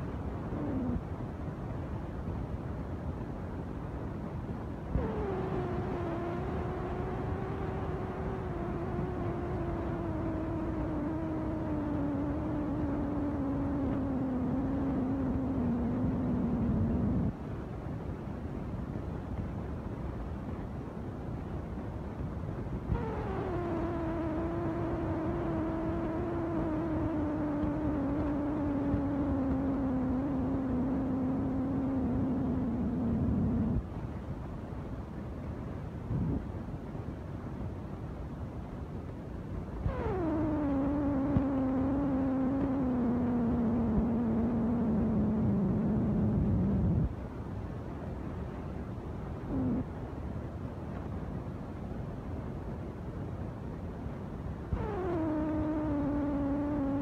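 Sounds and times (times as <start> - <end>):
motor-driven machine humming: 22.9 - 33.8, 39.9 - 47.1, 54.7 - 57.0.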